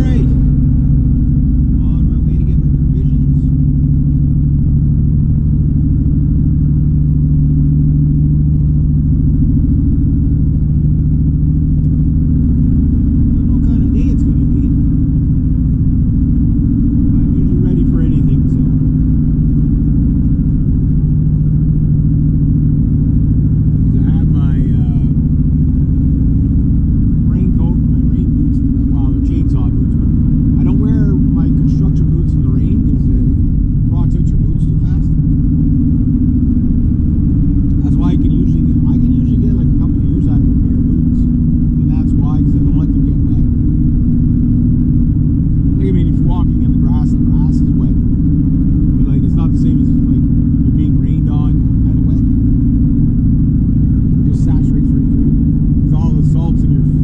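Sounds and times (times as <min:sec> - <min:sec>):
car engine and tyres drone: 0:00.0 - 0:57.0.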